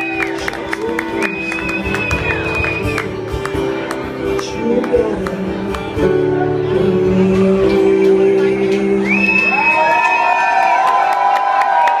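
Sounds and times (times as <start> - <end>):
crowd cheering: 0.0 - 4.2, 9.0 - 12.0
people clapping: 0.0 - 6.1, 9.5 - 12.0.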